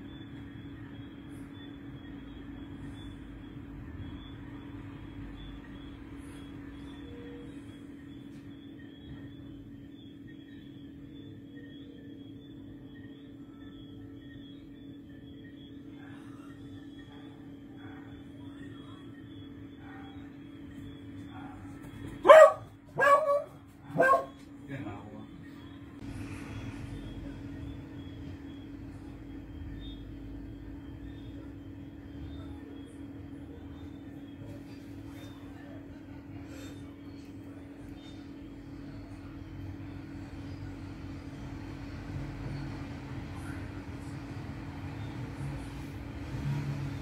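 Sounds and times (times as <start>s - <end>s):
steady low hum: 0.0s - 47.0s
dog barking: 17.1s - 18.3s, 19.8s - 20.4s, 21.2s - 24.5s.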